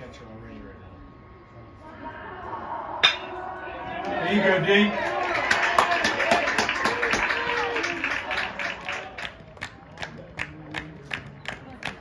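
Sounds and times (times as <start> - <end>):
crowd voices: 0.0 - 12.0
metal bat hitting ball: 3.0 - 3.4.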